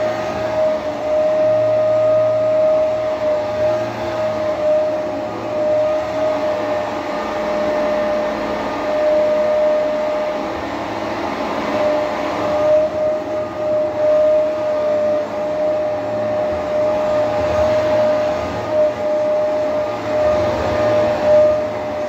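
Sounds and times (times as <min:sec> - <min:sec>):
vacuum cleaner on carpet: 0:00.0 - 0:22.0.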